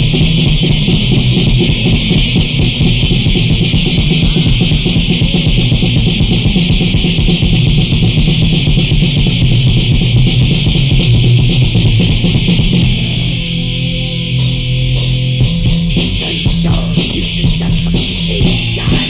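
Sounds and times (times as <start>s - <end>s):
metal band playing: 0.0s - 19.0s.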